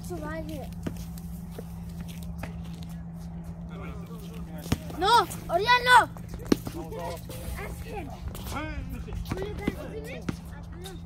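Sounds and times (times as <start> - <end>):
steady low hum: 0.0 - 11.0
basketball bouncing on concrete: 4.6 - 7.0, 8.3 - 11.0.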